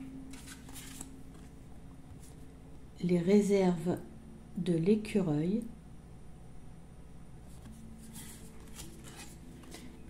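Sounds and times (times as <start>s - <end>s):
cards rustling and sliding: 0.3s - 1.5s, 7.5s - 10.0s.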